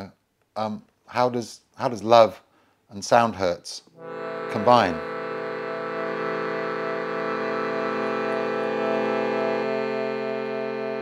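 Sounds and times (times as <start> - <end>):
shruti box drone: 4.0 - 11.0.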